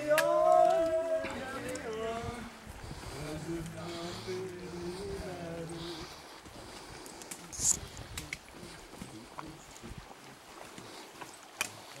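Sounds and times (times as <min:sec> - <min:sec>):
soft footfalls on trail: 0:00.2 - 0:12.0.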